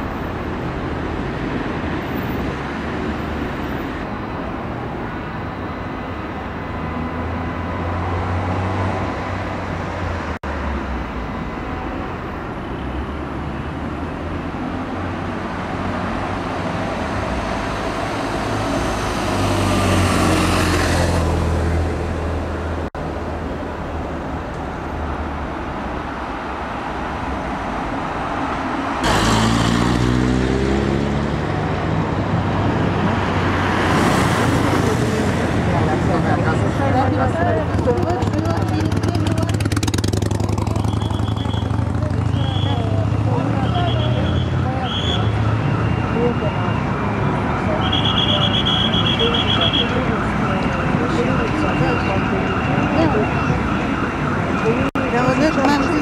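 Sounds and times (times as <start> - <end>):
road traffic rumble: 0.0 - 56.0
vehicle passing close by: 15.6 - 22.6, 28.9 - 44.8.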